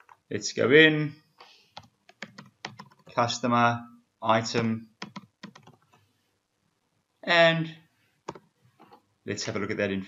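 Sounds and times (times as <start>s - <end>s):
computer keyboard typing: 1.8s - 3.2s, 5.0s - 5.9s.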